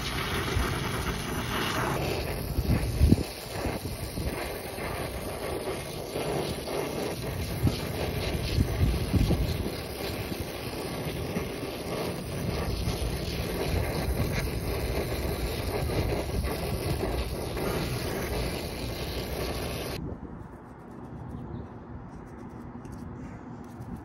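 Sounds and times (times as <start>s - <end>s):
torch flame hissing: 0.0s - 20.0s
wind buffeting microphone: 0.0s - 21.7s.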